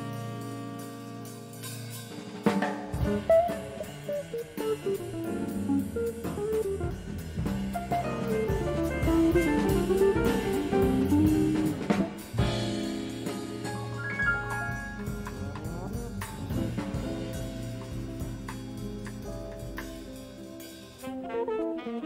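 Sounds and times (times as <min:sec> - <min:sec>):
drum kit accent: 0:00.0 - 0:21.2
jazz band playing: 0:00.0 - 0:22.0.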